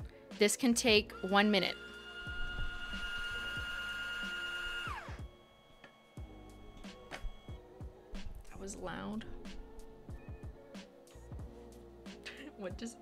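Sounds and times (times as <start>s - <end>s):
robot motor whine: 1.1s - 7.6s.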